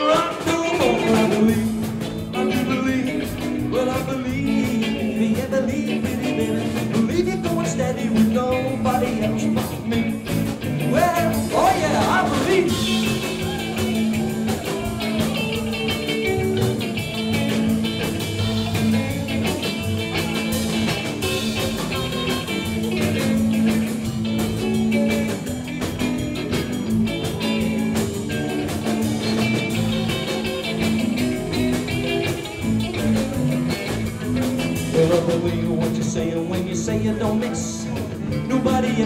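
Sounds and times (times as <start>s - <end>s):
drums: 0.0s - 39.0s
electric guitar lead: 0.0s - 39.0s
upright double bass: 0.0s - 39.0s.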